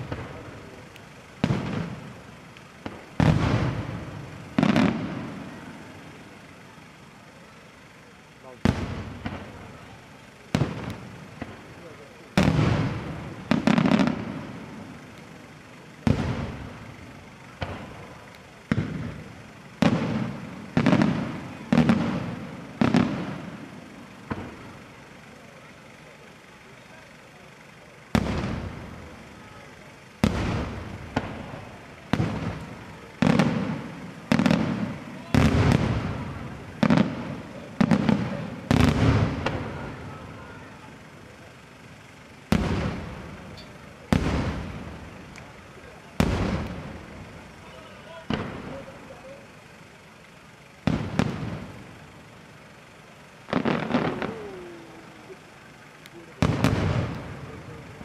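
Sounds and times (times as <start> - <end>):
firework shells bursting: 0.0 - 58.0.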